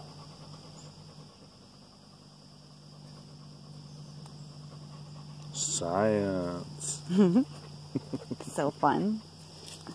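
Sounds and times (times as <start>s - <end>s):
crickets chirping: 0.0s - 9.9s
low steady hum: 0.0s - 9.9s.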